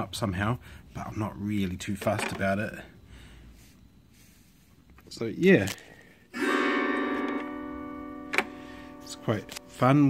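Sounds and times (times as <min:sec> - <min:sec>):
autoharp chord ringing: 0:06.3 - 0:10.0.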